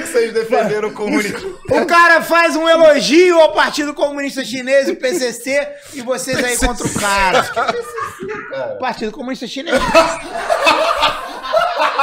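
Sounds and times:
men laughing: 0.0s - 2.6s, 4.7s - 8.8s, 9.7s - 12.0s.

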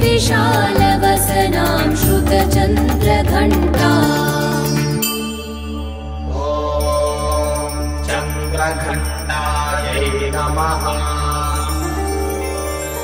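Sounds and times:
woman singing a hymn: 0.0s - 5.0s.

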